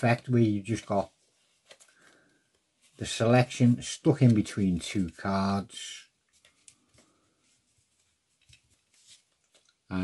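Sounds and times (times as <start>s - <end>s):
playing cards handled: 0.2s - 5.3s, 6.2s - 9.9s.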